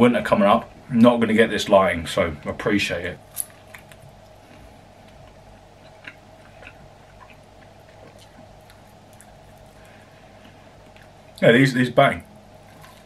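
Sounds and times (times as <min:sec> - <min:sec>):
low room hum: 0:00.0 - 0:13.0
mouth chewing clicks and smacks: 0:05.0 - 0:09.7.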